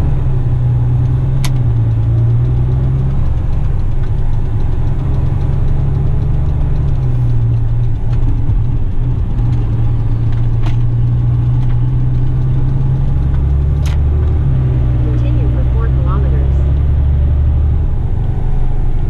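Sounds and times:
truck diesel engine droning: 0.0 - 19.0.

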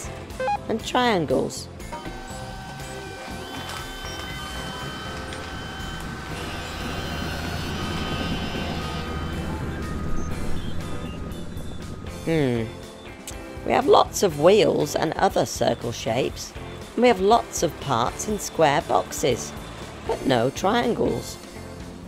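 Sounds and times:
cartoon forklift engine hum: 0.0 - 1.0, 1.8 - 13.0, 13.7 - 22.0
light background music: 0.0 - 22.0.

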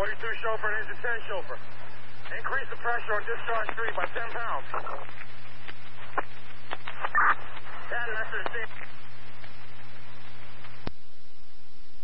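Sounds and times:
radio static with low hum: 0.0 - 12.0
sharp radio clicks: 2.2 - 11.0.

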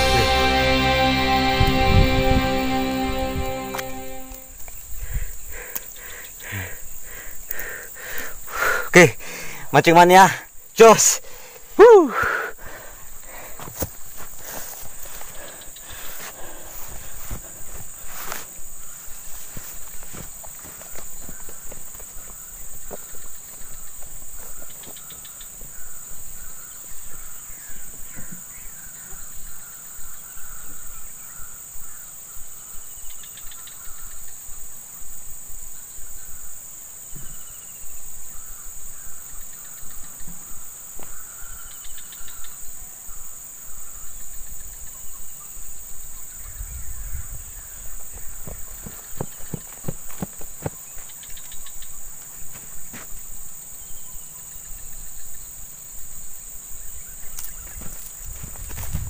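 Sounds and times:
insects droning high: 0.0 - 59.0.

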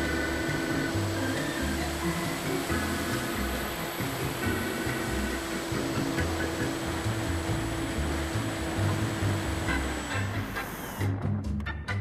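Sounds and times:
electric motor and propeller whine: 0.0 - 11.2
background music: 0.0 - 12.0.

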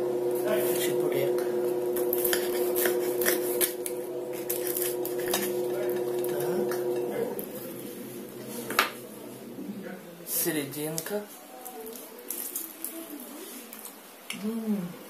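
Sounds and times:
low hum: 0.0 - 10.3
fried crust crackling: 0.5 - 8.7, 10.8 - 14.0
cutlery scraping a plate: 2.2 - 3.8, 4.4 - 7.1.

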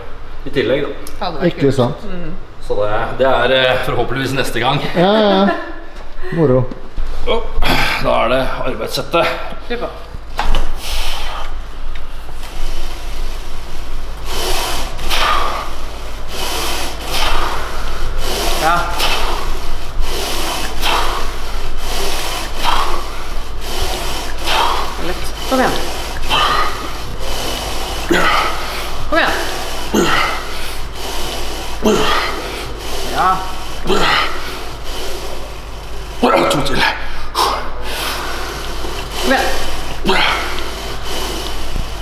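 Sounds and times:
man breathing hard: 14.2 - 35.5, 36.9 - 42.0
man grunting with strain: 31.8 - 32.5.

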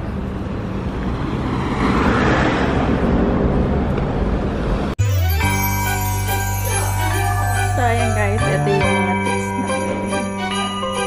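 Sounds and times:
vehicle passing: 0.0 - 5.0
low steady traffic rumble: 0.0 - 10.9.

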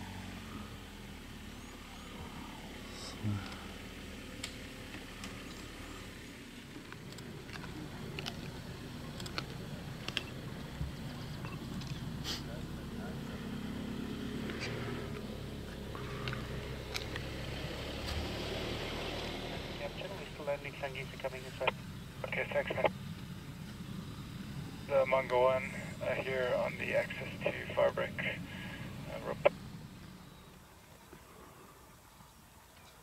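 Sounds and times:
faint voices: 1.7 - 4.0, 19.5 - 23.0, 24.8 - 29.9
steady low rumble: 19.5 - 30.7.

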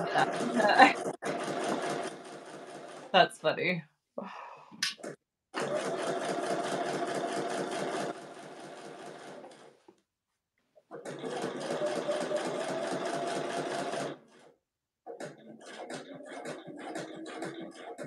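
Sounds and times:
sewing machine stitching: 0.0 - 3.1, 5.6 - 9.8, 10.9 - 18.0.

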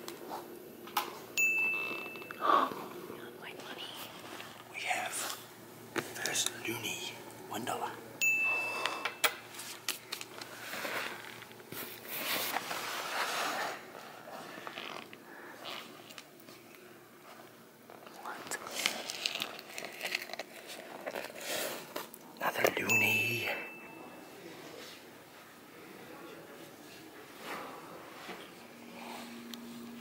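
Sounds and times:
brief high ding: 1.4 - 2.4, 8.2 - 9.3, 22.9 - 24.1.

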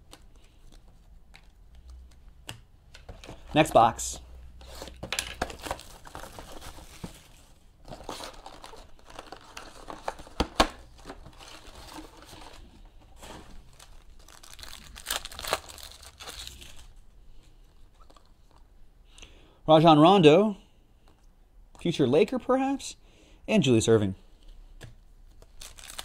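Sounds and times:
foil packs crinkling: 7.9 - 10.4, 11.0 - 16.9, 25.6 - 26.0.

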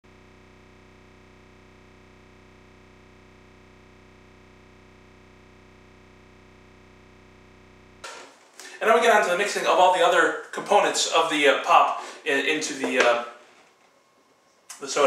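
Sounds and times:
faint electronic drone: 0.0 - 9.0.

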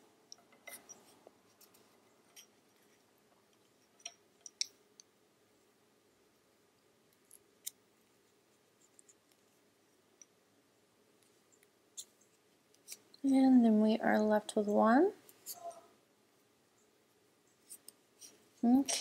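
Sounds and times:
knitting needles clicking: 0.2 - 5.2, 7.1 - 7.8, 11.2 - 13.4.

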